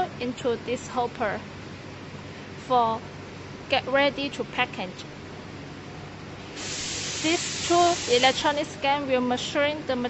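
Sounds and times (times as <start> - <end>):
loud even hiss: 6.5 - 8.7.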